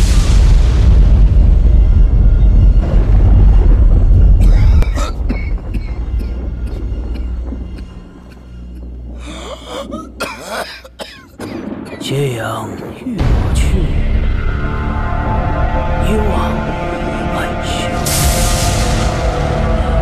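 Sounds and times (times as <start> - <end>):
deep low rumble: 0.0 - 10.3
dramatic music: 0.0 - 20.0
man coughing and hacking: 4.4 - 12.0.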